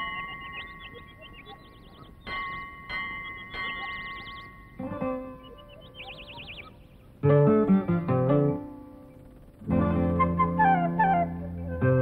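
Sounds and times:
bell ringing: 0.0 - 5.6
high warbling trills: 0.0 - 12.0.

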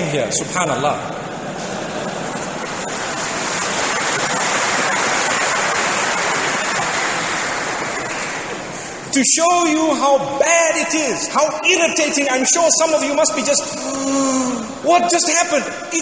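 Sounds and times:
large audience applauding: 2.1 - 9.1.

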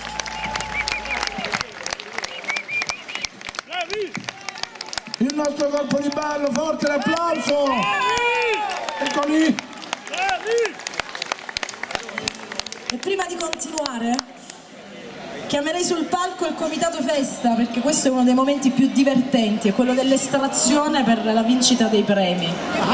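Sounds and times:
audience applauding: 0.0 - 14.6.

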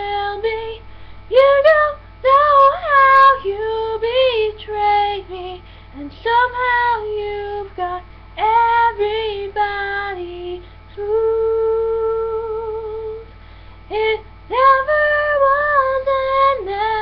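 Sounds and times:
young woman singing: 0.0 - 13.3, 13.9 - 17.0.

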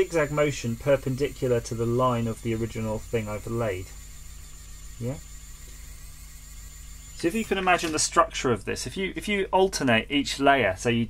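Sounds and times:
printing pen humming with whine: 0.0 - 11.0.

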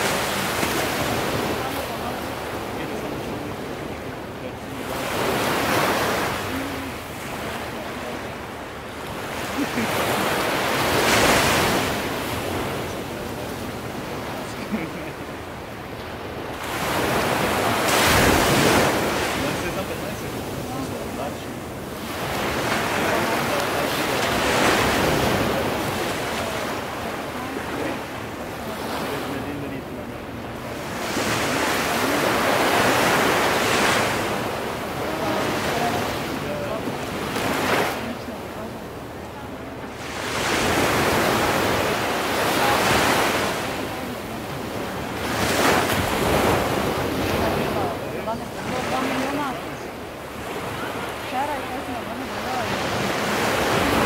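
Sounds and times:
ocean surf washing ashore: 0.0 - 54.0.

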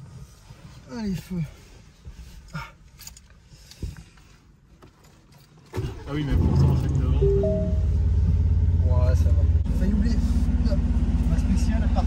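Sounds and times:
car engine starting: 5.7 - 12.0.

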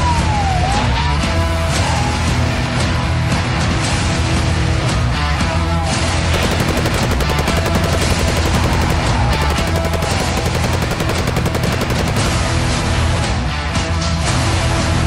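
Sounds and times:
rapid gunfire: 6.3 - 13.0.

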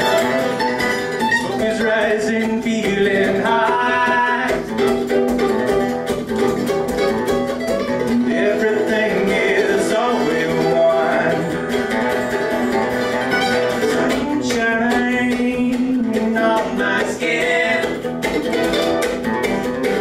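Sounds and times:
acoustic guitar: 0.0 - 20.0
mandolin: 0.0 - 20.0
man singing: 1.4 - 4.9, 8.0 - 11.9, 13.8 - 18.1.

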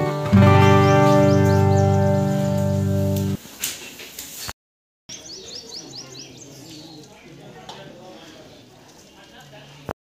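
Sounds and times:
faint outdoor background: 0.0 - 4.5, 5.1 - 10.0
bird chirping: 0.6 - 2.8, 5.1 - 7.4.

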